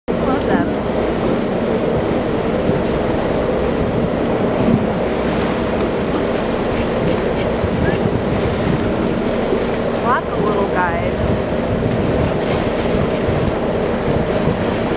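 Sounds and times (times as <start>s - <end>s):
boat engine idling: 0.1s - 14.9s
choppy sea water washing: 0.1s - 14.9s
wind noise on microphone: 0.1s - 14.9s.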